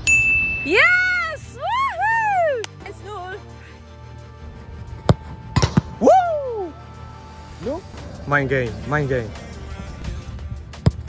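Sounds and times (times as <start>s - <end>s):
bright ding: 0.0s - 0.8s
woman shouting yeah: 0.6s - 2.7s.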